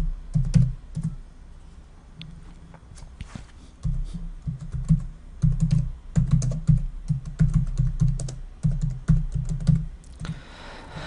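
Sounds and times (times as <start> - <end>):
typing on keyboard: 0.3 - 1.2, 3.8 - 9.9.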